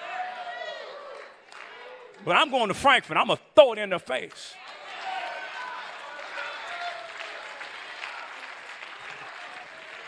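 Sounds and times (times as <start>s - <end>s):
congregation applauding: 4.2s - 10.0s.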